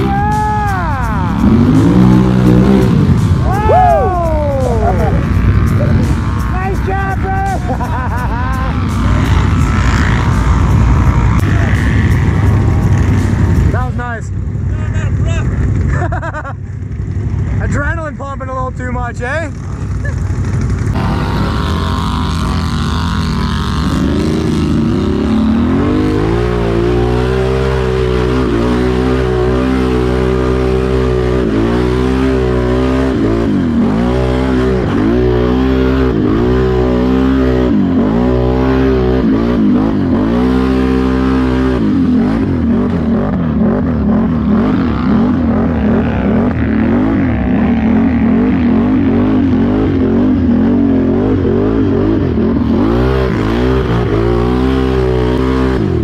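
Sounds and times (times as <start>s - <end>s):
atv engine revving: 0.0s - 56.0s.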